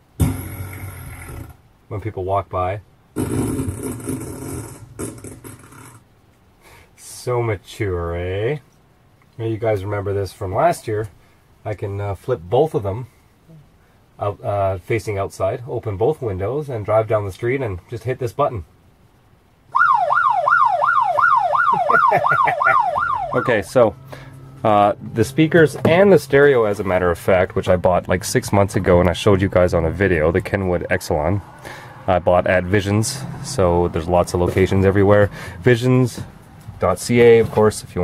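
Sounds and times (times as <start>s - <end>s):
roar from speakers: 0.2s - 1.7s, 3.1s - 6.0s
yelp siren: 19.7s - 24.6s.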